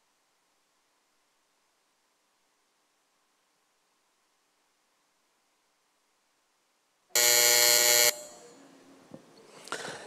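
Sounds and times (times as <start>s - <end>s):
electronic buzzer tone: 7.2s - 8.5s.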